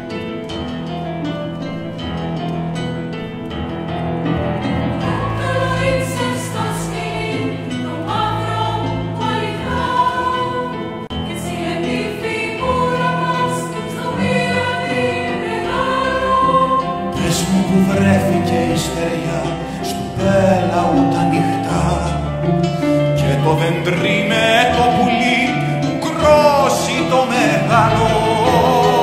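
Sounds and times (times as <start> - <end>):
piano strings and guitar ensemble: 0.0 - 29.0
women's choir singing in harmony: 4.4 - 19.8, 22.2 - 29.0.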